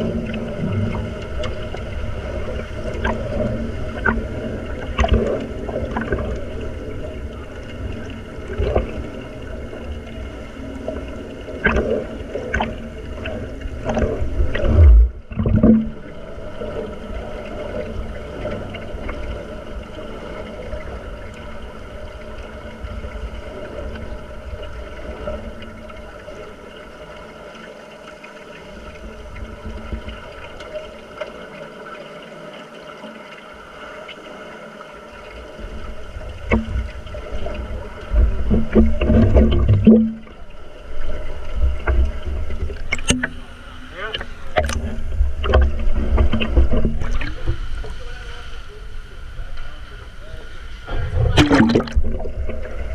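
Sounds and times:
muffled underwater rumble and hiss: 0.0 - 52.9
underwater clicks and knocks: 0.1 - 6.7, 7.9 - 9.2, 11.6 - 16.1, 36.2 - 40.5, 41.4 - 47.6, 51.2 - 52.9.

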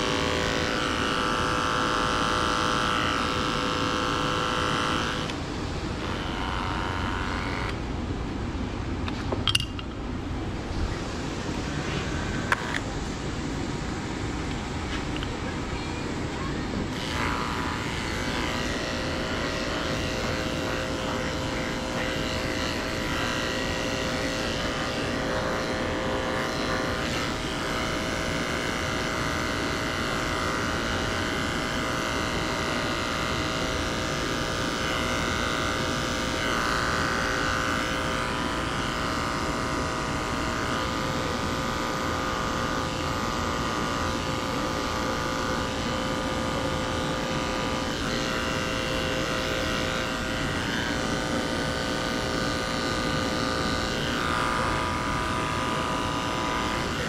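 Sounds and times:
electric clipper humming: 0.0 - 8.0, 11.4 - 15.4, 16.8 - 57.0
blade shearing fur: 0.0 - 8.3, 10.6 - 15.6, 16.4 - 57.0.

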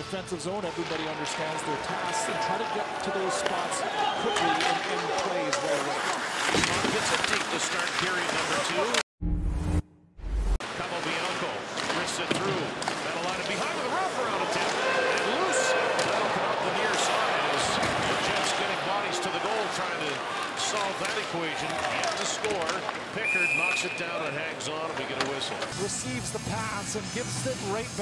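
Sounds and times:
hockey sticks and puck clacking: 0.6 - 9.0, 10.7 - 25.8.

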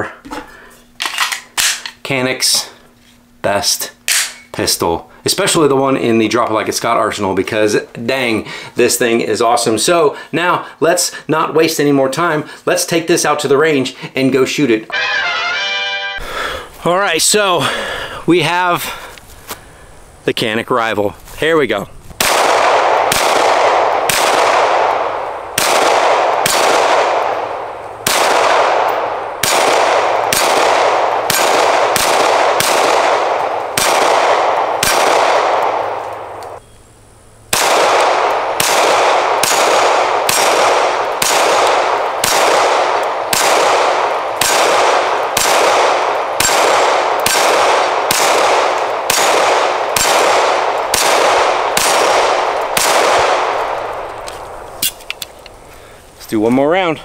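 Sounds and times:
pistol shots with echo: 22.2 - 36.6, 37.5 - 55.0.

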